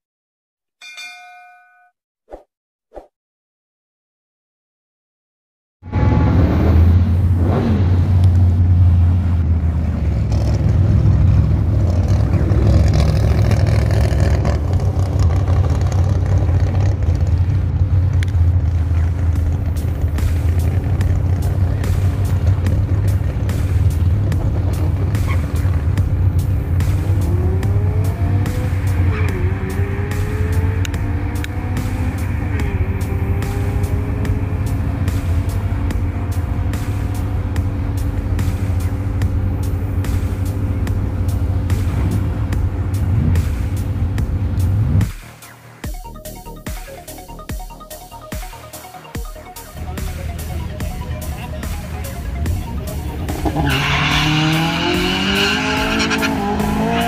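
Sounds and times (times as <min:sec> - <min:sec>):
race car accelerating away: 0:05.9 - 0:45.1, 0:49.7 - 0:57.0
race car engines idling: 0:06.9 - 0:30.7, 0:31.4 - 0:45.0, 0:49.5 - 0:56.9.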